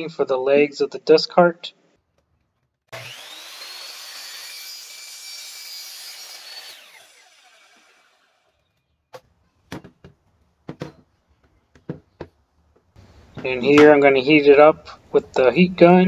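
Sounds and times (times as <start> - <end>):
miter saw motor whining: 2.9 - 8.7.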